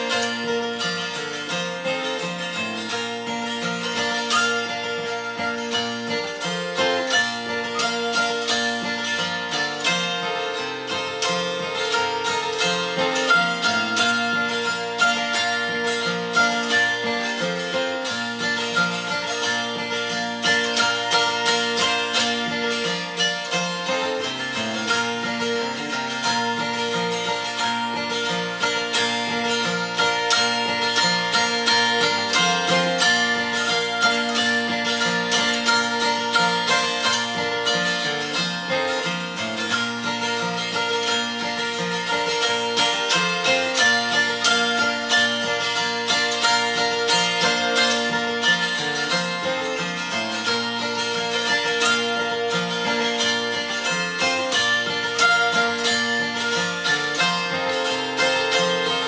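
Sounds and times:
dulcimer playing hymn melody: 0.0 - 59.0
strummed acoustic guitar: 0.0 - 59.0.

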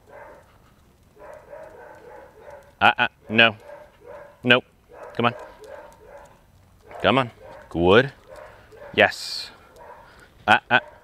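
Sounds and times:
man speaking a command: 2.8 - 3.6, 4.4 - 5.4, 6.9 - 8.2, 8.9 - 9.6, 10.4 - 10.9.

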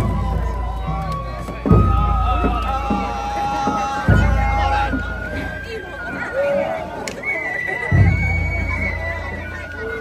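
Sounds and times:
crowd voices: 0.0 - 10.0
flute high notes: 0.0 - 10.0.

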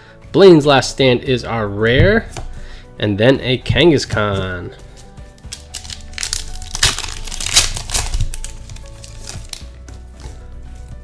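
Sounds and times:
faint background music: 0.0 - 11.0
foil wrapper crinkling: 5.4 - 9.7.

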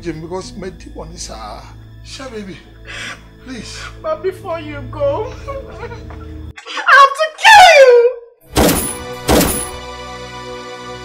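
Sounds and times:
soft background music: 0.0 - 6.8, 8.5 - 11.0
handgun shots: 8.5 - 9.8.

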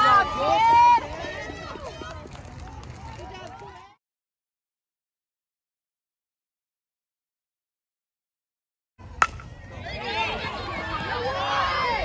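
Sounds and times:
spectators shouting and cheering: 0.0 - 2.2, 9.2 - 12.0
bat striking ball: 9.1 - 9.6.

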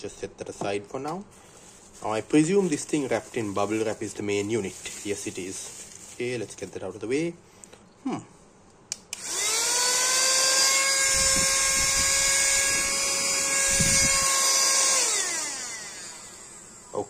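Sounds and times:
mini vacuum motor whine: 9.1 - 17.0.

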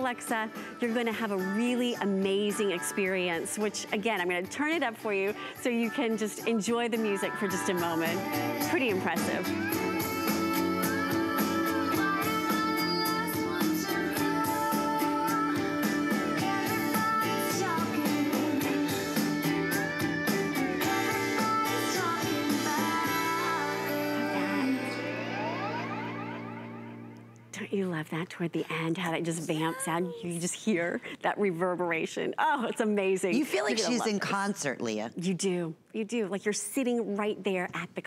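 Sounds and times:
woman singing song from speaker: 0.0 - 19.8, 20.8 - 26.4, 33.3 - 34.1.

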